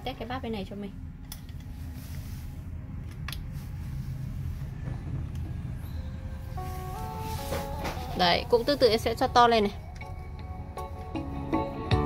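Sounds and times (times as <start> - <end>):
bass-heavy music through speaker: 6.6 - 12.0.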